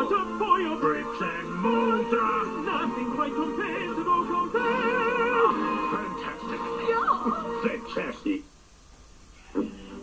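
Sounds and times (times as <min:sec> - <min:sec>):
operatic male voice singing: 0:00.0 - 0:06.5
orchestral backing music: 0:00.0 - 0:07.9.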